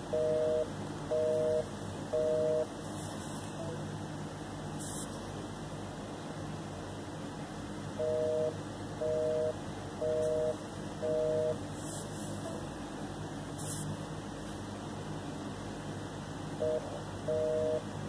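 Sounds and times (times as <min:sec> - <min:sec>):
phone line hiss: 0:00.1 - 0:02.7, 0:08.0 - 0:11.6, 0:16.6 - 0:17.9
telephone busy signal beeps: 0:00.1 - 0:02.7, 0:08.0 - 0:11.6, 0:16.6 - 0:17.9.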